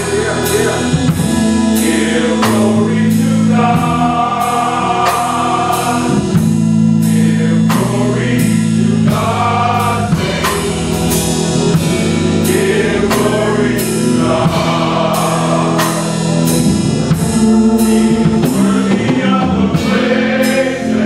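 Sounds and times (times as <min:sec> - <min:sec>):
male vocal group singing in harmony: 0:00.0 - 0:21.0
steady beat of sharp hits: 0:00.0 - 0:21.0.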